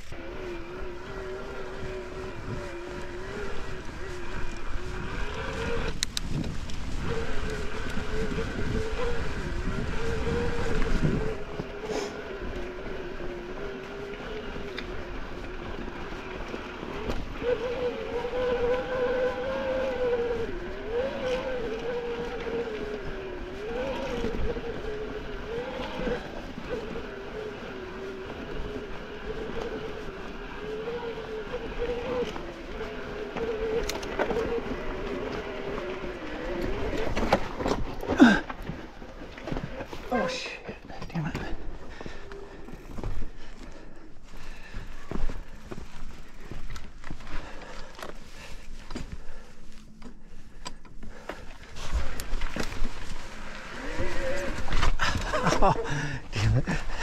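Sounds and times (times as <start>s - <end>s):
electric bike motor whining: 0.0s - 40.5s, 41.4s - 57.0s
wind: 0.0s - 57.0s.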